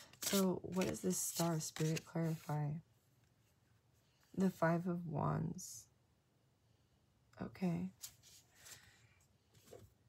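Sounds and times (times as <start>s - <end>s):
cards tapping and rustling: 0.0s - 2.4s.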